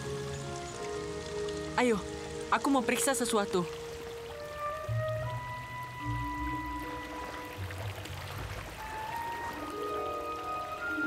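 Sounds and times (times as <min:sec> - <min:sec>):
soft sustained music notes: 0:00.0 - 0:11.0.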